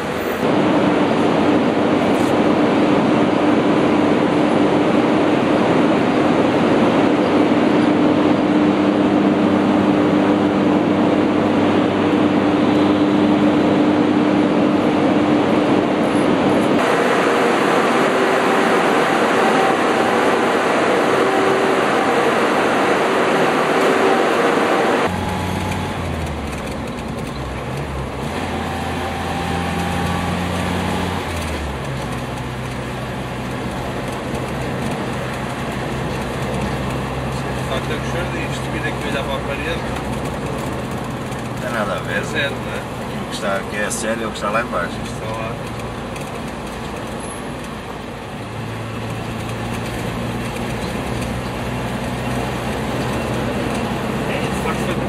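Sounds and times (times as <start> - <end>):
generators droning and humming: 0.0 - 49.6
vehicle engine running: 0.0 - 55.0.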